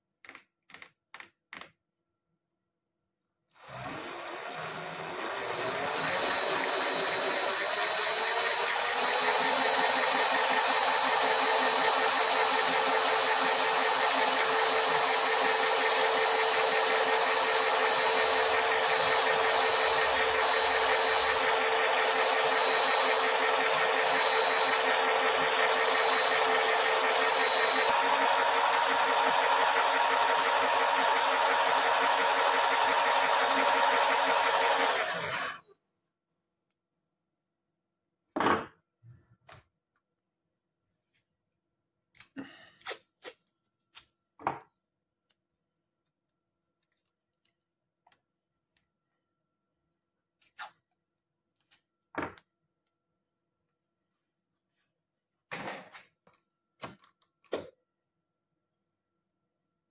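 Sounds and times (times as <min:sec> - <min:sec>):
coil winder motor whirring: 0:03.6 - 0:35.6.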